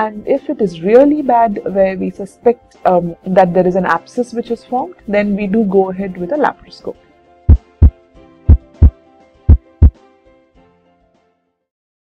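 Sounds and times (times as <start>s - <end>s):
heartbeat thumps: 7.5s - 9.9s.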